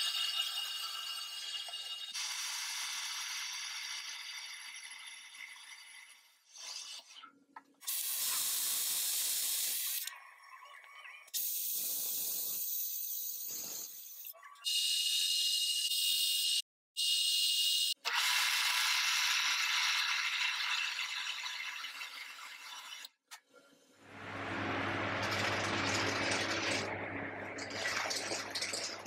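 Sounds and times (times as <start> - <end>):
lathe motor whine: 24.1 - 27.7.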